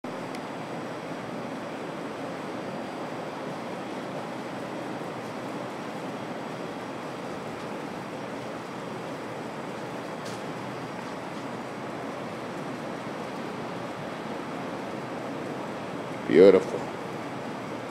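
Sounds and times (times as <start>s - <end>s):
steady background hiss: 0.1s - 17.9s.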